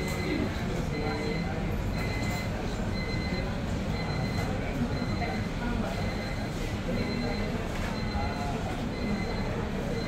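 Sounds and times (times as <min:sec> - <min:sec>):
faint voices: 0:00.0 - 0:10.0
low rumble of shop interior: 0:00.0 - 0:10.0.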